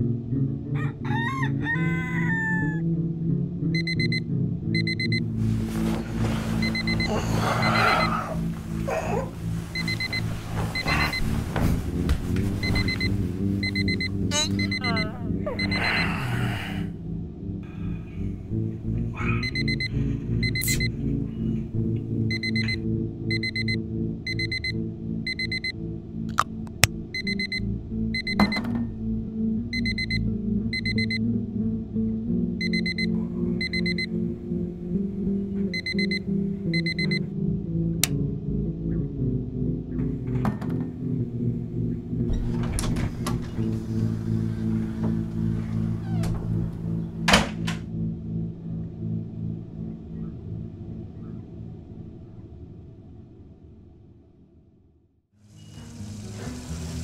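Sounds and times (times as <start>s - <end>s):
low film music: 0.0s - 54.0s, 55.4s - 57.0s
alarm clock beeping: 3.7s - 5.3s, 6.5s - 8.4s, 9.7s - 11.4s, 12.6s - 16.0s, 19.4s - 20.9s, 22.3s - 25.8s, 27.2s - 28.6s, 29.7s - 31.2s, 32.6s - 34.2s, 35.7s - 37.2s.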